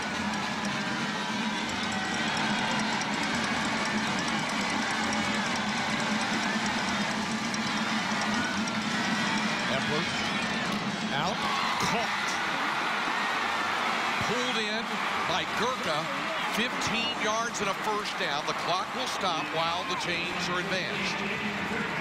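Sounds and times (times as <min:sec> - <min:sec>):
stadium crowd noise: 0:00.0 - 0:22.0.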